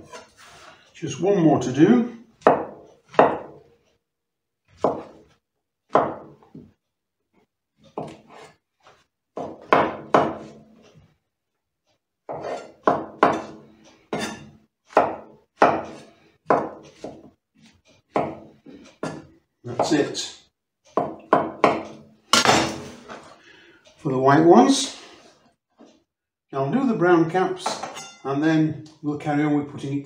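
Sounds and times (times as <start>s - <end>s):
knife chopping on cutting board: 2.4s - 3.7s, 4.7s - 6.7s, 7.9s - 8.6s, 9.4s - 10.6s, 12.3s - 20.0s, 21.0s - 22.6s.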